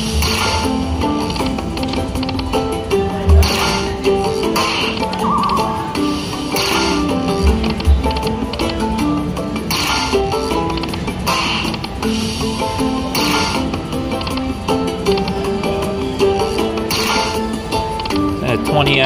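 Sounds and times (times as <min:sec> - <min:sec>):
slot machine looping tune: 0:00.0 - 0:19.0.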